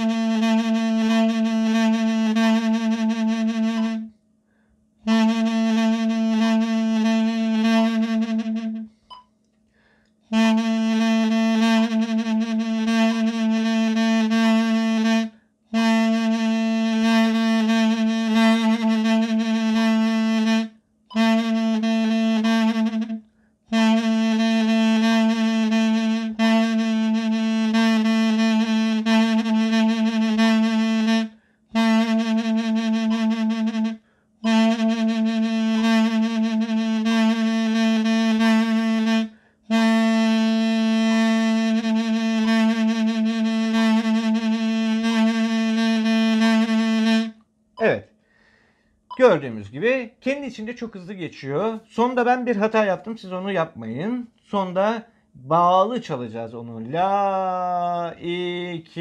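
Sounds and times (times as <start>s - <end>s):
double-reed wind instrument vibrato: 0.0s - 4.1s, 5.0s - 9.1s, 10.3s - 48.0s, 49.2s - 59.0s.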